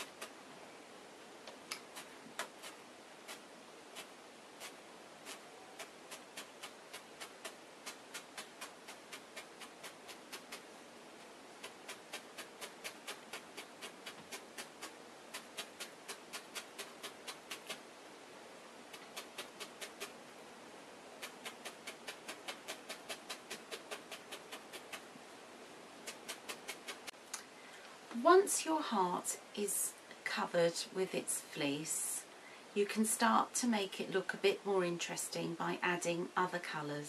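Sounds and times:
felting needle ticks: 1.4s - 10.7s, 11.6s - 17.8s, 18.9s - 20.1s, 21.2s - 25.0s.

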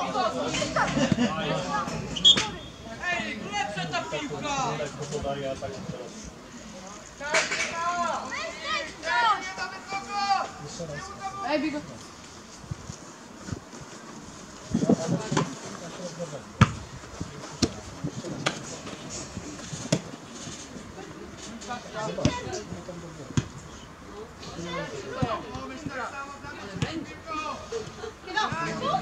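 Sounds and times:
players shouting: 7.6s - 11.7s
ball kicked thud: 16.6s - 16.8s.

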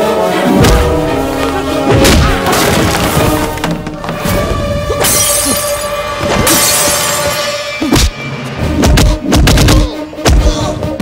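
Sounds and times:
dramatic film score: 0.0s - 11.0s
glass shattering: 5.0s - 7.6s.

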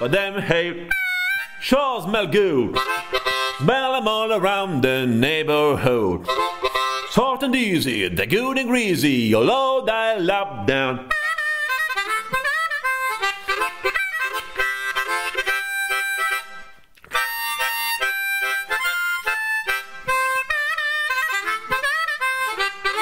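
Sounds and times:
blues harmonica solo: 0.0s - 9.4s, 10.6s - 23.0s
person singing: 3.6s - 6.4s.

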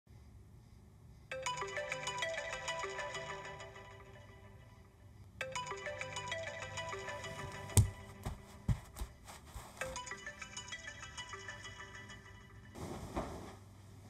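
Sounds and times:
phone ringtone melody: 1.3s - 8.7s, 9.8s - 12.8s.

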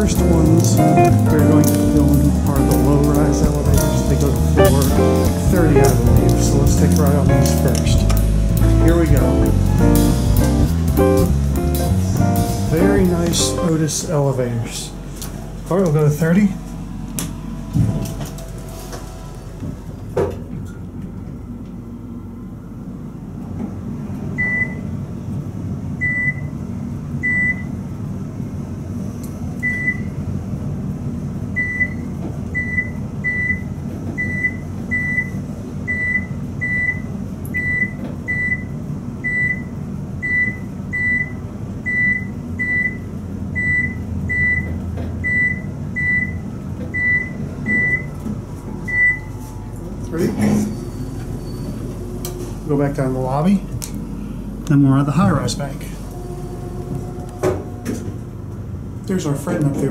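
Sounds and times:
elevator low hum: 0.0s - 59.9s.

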